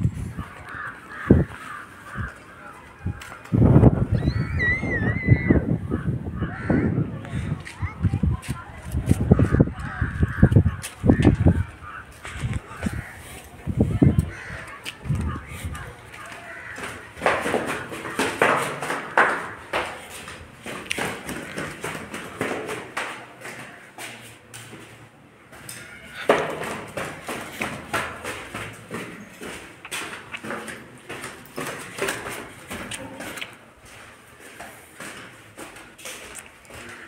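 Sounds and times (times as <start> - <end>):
footsteps on concrete: 0.0 - 4.2, 6.4 - 37.0
crows cawing: 0.4 - 3.4, 5.9 - 7.6, 9.3 - 13.4, 14.1 - 20.4, 36.7 - 37.0.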